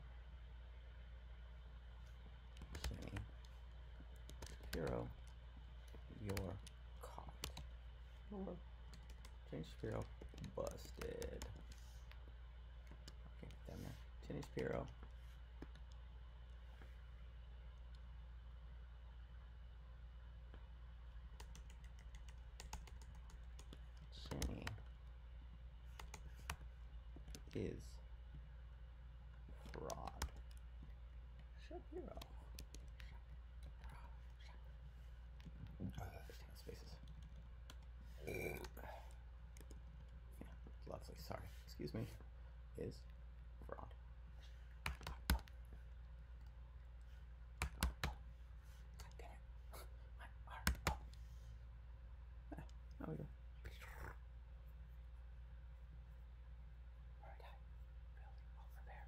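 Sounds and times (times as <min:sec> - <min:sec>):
steady low hum: 0:00.0 - 0:59.0
computer keyboard typing: 0:02.5 - 0:03.3, 0:04.2 - 0:05.3, 0:05.9 - 0:07.7, 0:08.9 - 0:11.8, 0:21.3 - 0:24.9, 0:25.9 - 0:26.6, 0:27.2 - 0:27.6, 0:29.6 - 0:30.6, 0:32.1 - 0:34.0, 0:44.8 - 0:45.6, 0:47.6 - 0:48.2
whispered muttering: 0:02.6 - 0:03.4, 0:09.5 - 0:11.9, 0:29.5 - 0:30.4, 0:31.6 - 0:34.8, 0:35.6 - 0:37.2, 0:38.1 - 0:39.2, 0:49.0 - 0:51.2, 0:52.5 - 0:54.3, 0:58.2 - 0:59.0.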